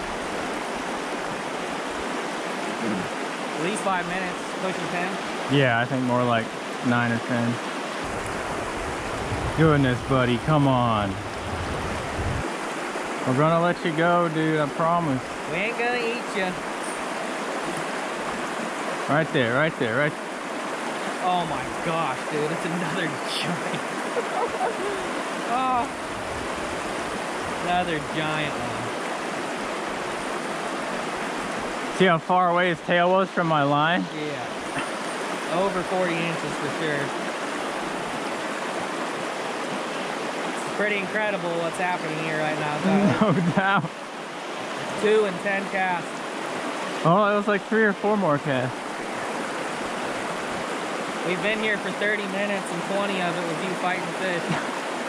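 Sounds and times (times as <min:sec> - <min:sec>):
river water rushing through rapids: 0:00.0 - 0:32.8, 0:33.4 - 0:55.0
man's voice: 0:02.8 - 0:03.1, 0:05.5 - 0:07.6, 0:09.6 - 0:11.2, 0:13.3 - 0:17.0, 0:19.1 - 0:20.1, 0:21.2 - 0:23.8, 0:27.6 - 0:28.9, 0:32.0 - 0:34.2, 0:42.8 - 0:43.9, 0:47.0 - 0:48.7
low rumble: 0:08.1 - 0:12.4.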